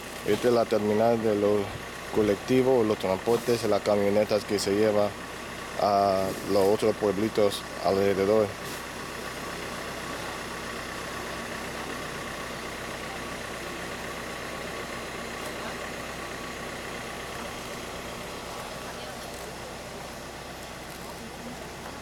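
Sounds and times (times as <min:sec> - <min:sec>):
vehicle engine idling: 0:00.0 - 0:22.0
faint background voices: 0:17.2 - 0:22.0.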